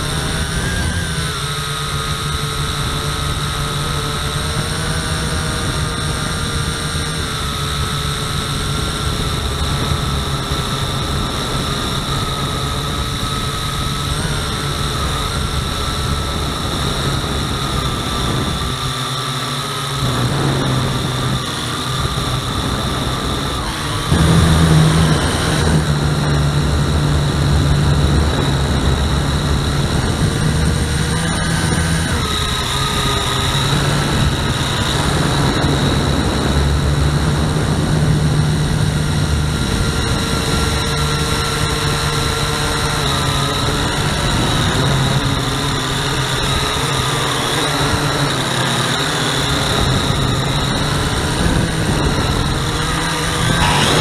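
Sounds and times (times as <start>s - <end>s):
drone propellers whining: 0.0s - 54.0s.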